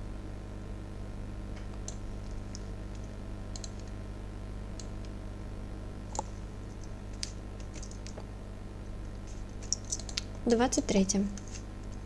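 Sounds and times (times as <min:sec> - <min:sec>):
steady low hum: 0:00.0 - 0:12.0
mouse and keyboard clicks: 0:06.1 - 0:08.2, 0:09.2 - 0:10.4.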